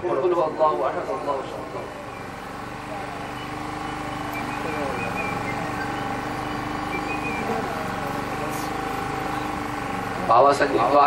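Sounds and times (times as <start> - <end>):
faint voices talking: 0.0 - 11.0
steady machine hum: 0.4 - 11.0.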